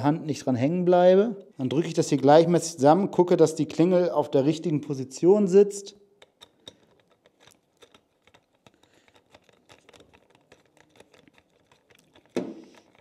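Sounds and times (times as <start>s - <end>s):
small clicks of screws and driver: 6.2s - 13.0s.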